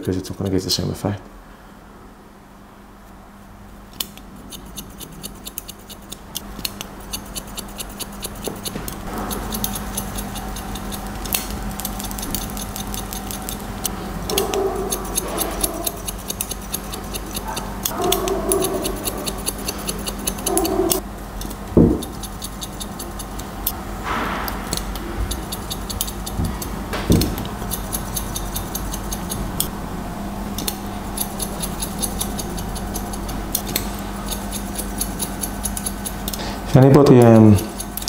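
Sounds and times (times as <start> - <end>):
scissors snipping hair: 3.9 - 23.8, 24.6 - 29.7, 30.6 - 38.0
loud knocks: 21.8 - 22.1, 26.4 - 27.4.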